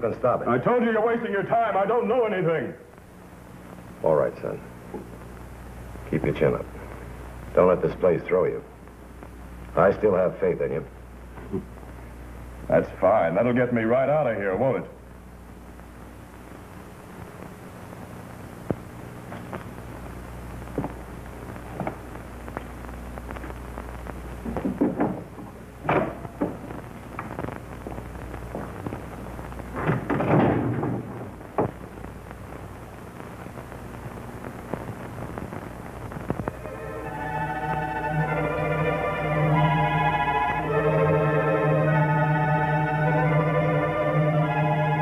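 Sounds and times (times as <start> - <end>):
low film soundtrack hum: 0.0 - 45.0
faint crackle: 2.8 - 13.8, 14.4 - 38.7.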